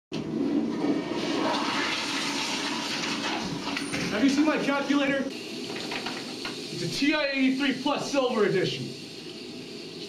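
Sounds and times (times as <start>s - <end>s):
toilet flushing: 0.2s - 10.0s.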